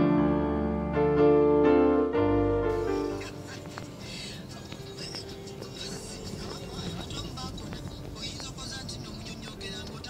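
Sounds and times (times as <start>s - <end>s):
vehicle engine and road rumble: 2.4s - 10.0s
scattered voices: 2.9s - 10.0s.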